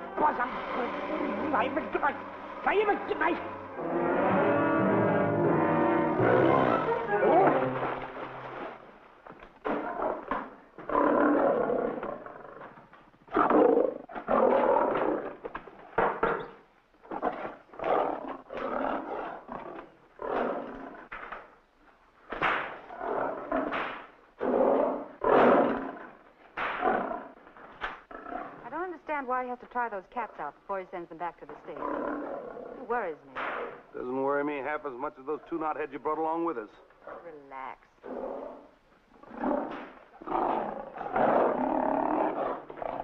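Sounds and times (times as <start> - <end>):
lions roaring and snarling: 0.0 - 8.8, 9.6 - 15.5, 16.1 - 21.2, 22.6 - 27.4, 28.0 - 28.6, 31.8 - 32.9, 38.0 - 43.0
orchestral film music: 0.0 - 8.8.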